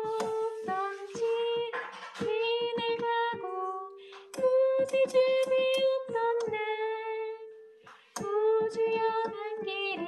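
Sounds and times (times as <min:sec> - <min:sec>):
woman singing a hymn: 0:00.0 - 0:07.5, 0:08.2 - 0:10.0
digital piano chords: 0:00.0 - 0:10.0.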